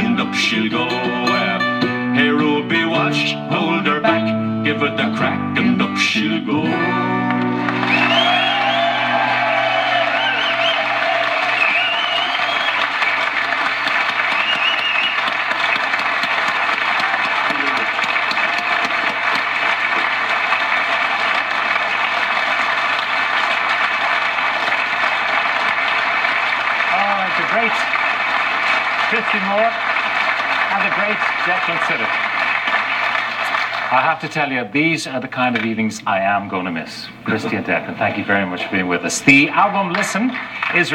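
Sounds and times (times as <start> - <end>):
audience applauding and cheering: 6.8 - 34.6, 38.2 - 40.9
whoops and whistles: 7.8 - 13.2, 14.3 - 15.4.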